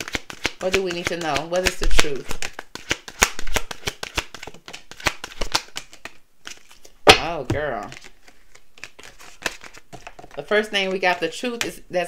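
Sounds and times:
cards shuffled by hand: 0:00.0 - 0:11.8.

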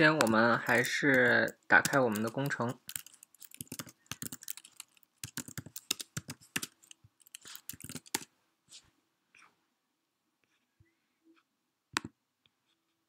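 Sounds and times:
keyboard typing clicks: 0:00.2 - 0:08.3.

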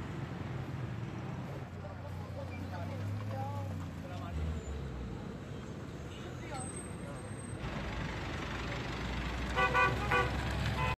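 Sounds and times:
street traffic noise: 0:00.0 - 0:11.0
car horn toots: 0:09.6 - 0:11.0.

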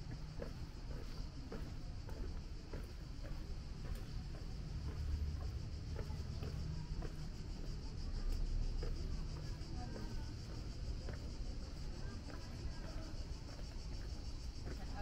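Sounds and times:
footsteps on cobblestones: 0:00.0 - 0:15.0
pulsing insect chorus: 0:00.0 - 0:15.0.

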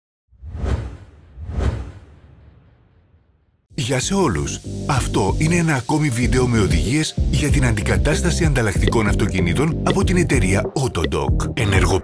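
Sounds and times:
whoosh sound effects: 0:00.4 - 0:03.3.

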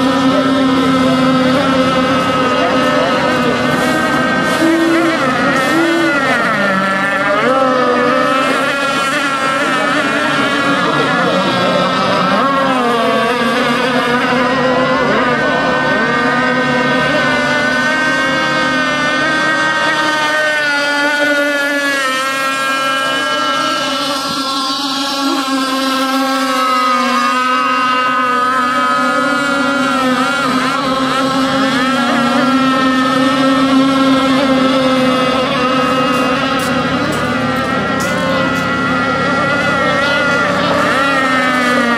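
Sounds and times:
model boat engines whining: 0:00.0 - 0:41.9.

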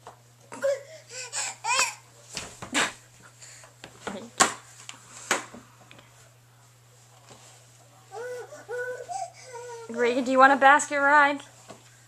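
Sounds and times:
toddler vocalizing: 0:00.5 - 0:02.0, 0:08.1 - 0:09.9.

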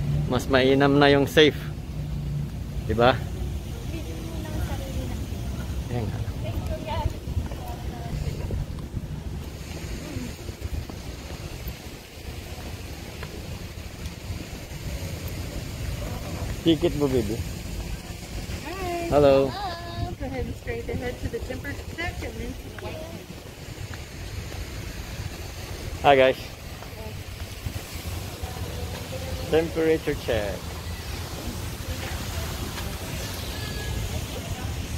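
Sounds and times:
faint voices: 0:03.6 - 0:24.5, 0:25.9 - 0:34.9
wind buffeting microphone: 0:04.0 - 0:28.9.

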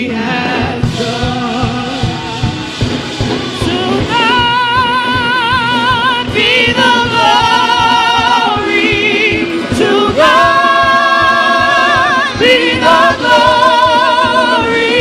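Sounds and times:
band accompaniment with steady beat: 0:00.0 - 0:15.0
gospel singing with vibrato: 0:00.0 - 0:15.0.

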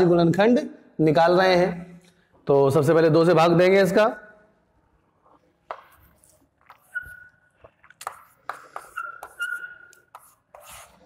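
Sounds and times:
chalk scratching on blackboard: 0:06.0 - 0:07.3, 0:08.0 - 0:11.0
chalk squeak: 0:06.2 - 0:11.0.

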